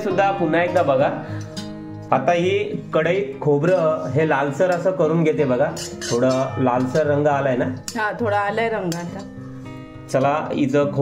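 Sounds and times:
soft background music: 0:00.0 - 0:11.0
woman talking: 0:07.9 - 0:09.4.

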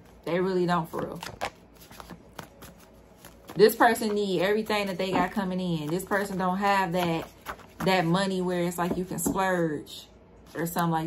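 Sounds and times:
cards being shuffled: 0:00.9 - 0:08.2.

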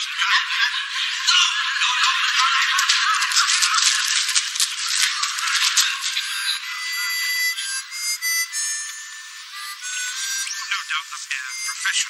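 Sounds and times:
harmonica tune: 0:00.0 - 0:12.0.

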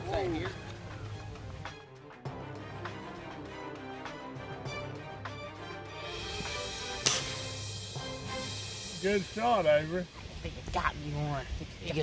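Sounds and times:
background music: 0:00.0 - 0:11.0
air rifle shot: 0:07.0 - 0:07.6.

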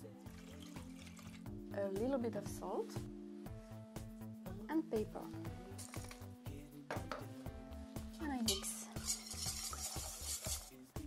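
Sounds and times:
wire whisk beating in metal bowl: 0:08.5 - 0:10.8.

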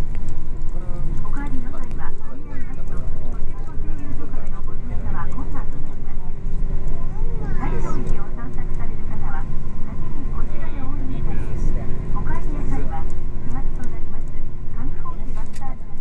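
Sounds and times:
bus engine and road rumble: 0:00.0 - 0:16.0
indistinct voices talking: 0:00.7 - 0:16.0.

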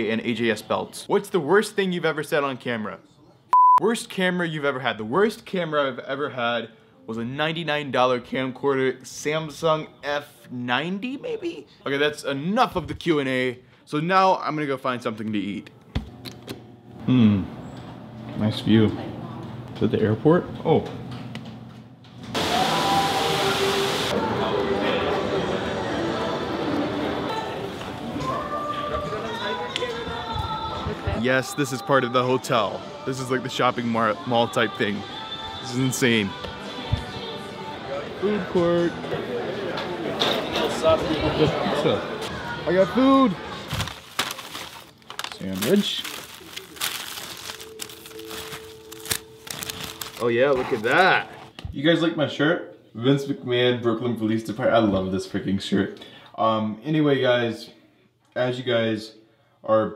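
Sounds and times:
paper wrapper crinkling: 0:43.7 - 0:51.3.

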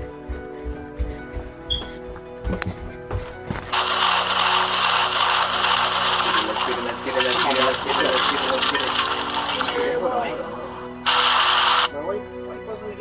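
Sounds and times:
background music: 0:00.0 - 0:13.0.

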